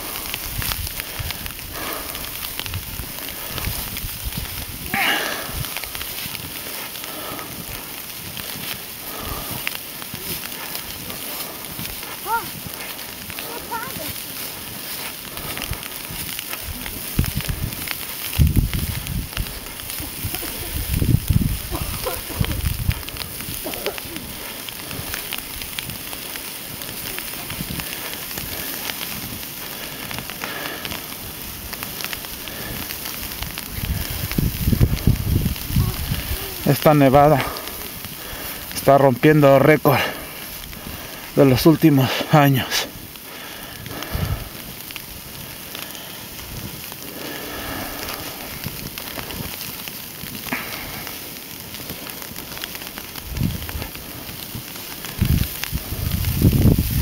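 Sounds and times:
low rumbles: 0.0 - 39.0
footsteps crunching through snow: 0.0 - 57.0.

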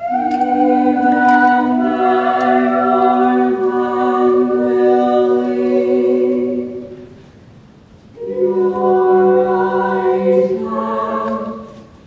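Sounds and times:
vocal quartet singing in harmony: 0.0 - 7.3, 8.1 - 12.0.

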